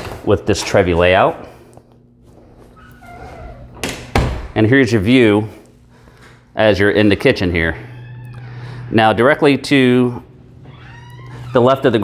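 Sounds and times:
door hinge squeak: 0:02.8 - 0:03.8, 0:07.8 - 0:09.0, 0:10.3 - 0:12.0
door shutting with a knock: 0:03.8 - 0:04.5.

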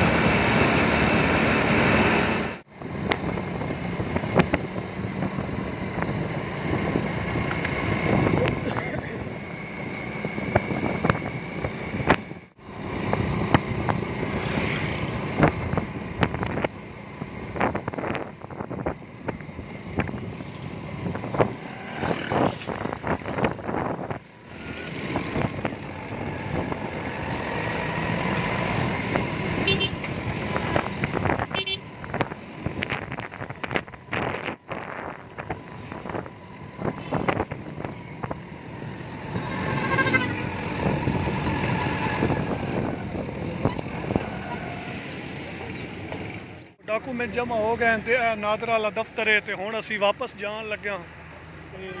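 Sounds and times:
motorcycle engine running: 0:02.5 - 0:44.2.

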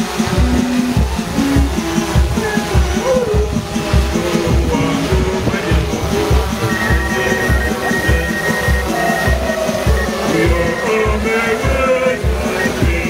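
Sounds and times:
music with steady bass beat: 0:00.0 - 0:13.0.

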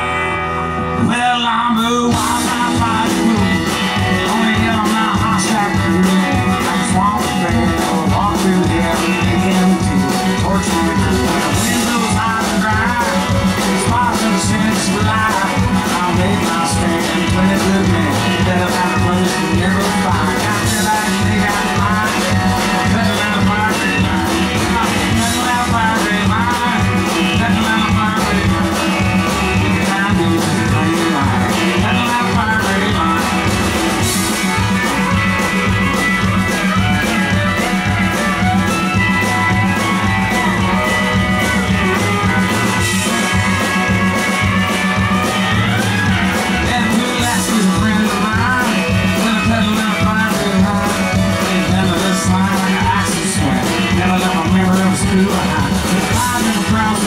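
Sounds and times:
bass: 0:00.0 - 0:57.0
drums: 0:00.0 - 0:57.0
electric guitars: 0:00.0 - 0:57.0
pedal steel guitar: 0:00.0 - 0:57.0
fiddle: 0:01.9 - 0:57.0.

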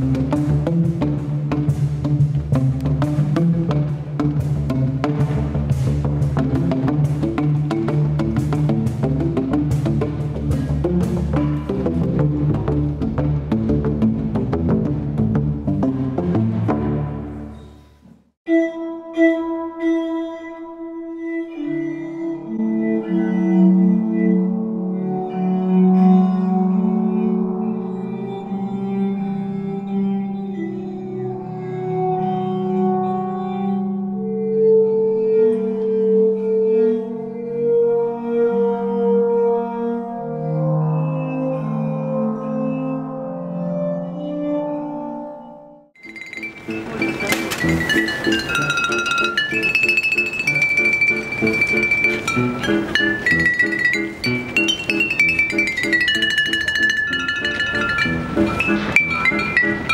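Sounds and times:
glass-tube instrument fast notes: 0:46.0 - 0:59.9
stroked glass rods ringing: 0:46.0 - 0:59.9.

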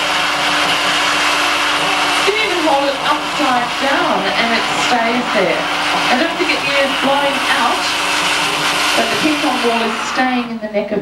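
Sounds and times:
air blowing through hose: 0:00.0 - 0:10.5
vacuum cleaner motor humming: 0:00.0 - 0:10.9.

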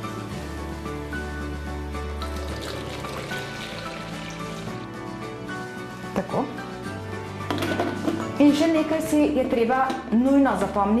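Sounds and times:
background music: 0:00.0 - 0:11.0
water pouring from a jug: 0:02.2 - 0:04.9.

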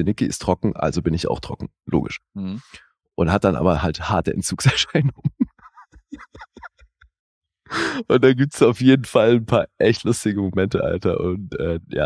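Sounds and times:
man mumbling: 0:01.9 - 0:02.8, 0:04.7 - 0:05.4, 0:07.7 - 0:12.0
breath into microphone: 0:07.7 - 0:08.1.

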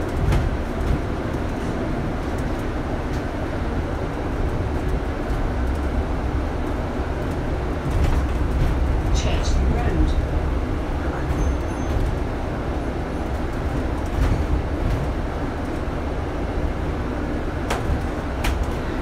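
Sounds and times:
bus engine and road rumble: 0:00.0 - 0:19.0.

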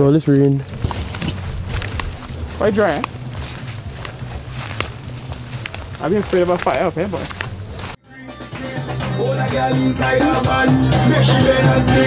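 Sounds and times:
footsteps through dry brush: 0:00.3 - 0:08.0
steady low rumble: 0:00.6 - 0:06.1
twigs snapping and crackling: 0:00.7 - 0:08.0.

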